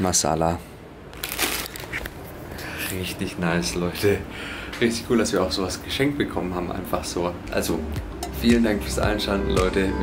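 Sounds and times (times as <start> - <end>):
plastic chip packet crinkling: 1.1 - 2.1.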